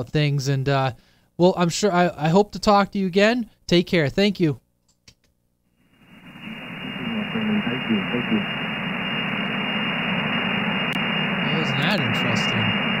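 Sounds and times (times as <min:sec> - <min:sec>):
radio static hiss: 0:05.8 - 0:13.0
faint unreadable voice: 0:06.8 - 0:08.5.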